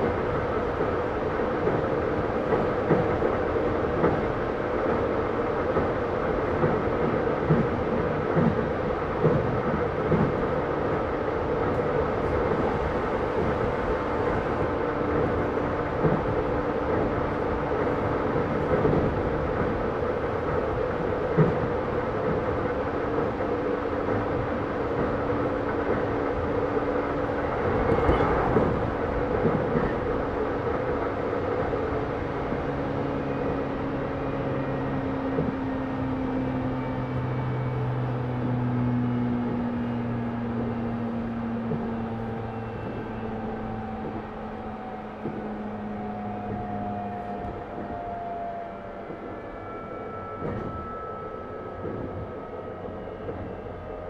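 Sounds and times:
train rolling and traction noise: 0:00.0 - 0:54.0.

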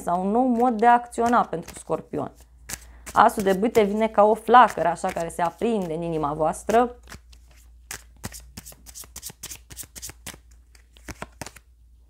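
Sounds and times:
cards being shuffled: 0:00.5 - 0:11.7.

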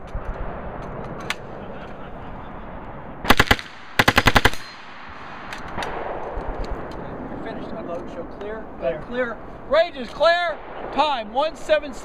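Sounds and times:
submachine gun bursts: 0:03.3 - 0:04.7.

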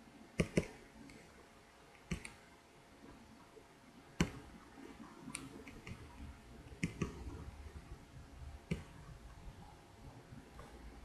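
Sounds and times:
computer mouse double-click: 0:00.4 - 0:01.2, 0:02.0 - 0:02.4, 0:06.8 - 0:07.2.

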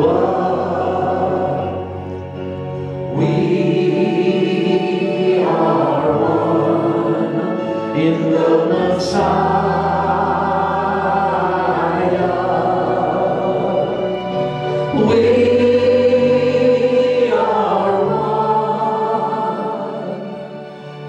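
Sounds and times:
group singing worship song: 0:00.0 - 0:21.0
sustained chords: 0:00.0 - 0:21.0.

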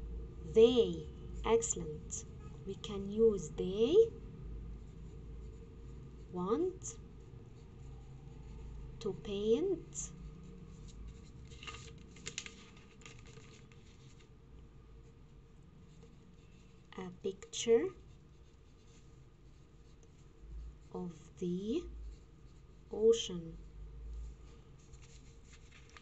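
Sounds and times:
low room hum: 0:00.0 - 0:26.0
pencil scratching on paper: 0:04.8 - 0:08.6, 0:24.3 - 0:25.9.

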